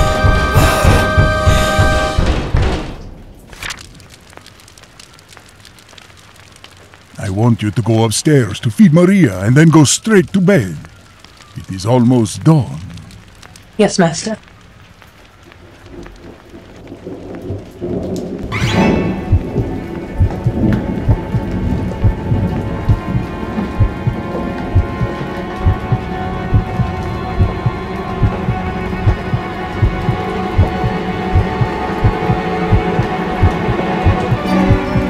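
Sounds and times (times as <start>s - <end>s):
low thumping pulse: 0.0s - 2.8s, 19.2s - 35.0s
rumbling rain-like noise: 0.0s - 35.0s
ominous drone tones: 18.7s - 35.0s.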